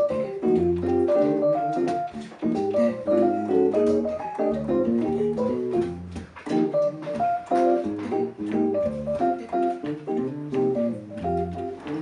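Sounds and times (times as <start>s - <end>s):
jazz piano: 0.0s - 12.0s
electric bass line: 2.5s - 6.3s.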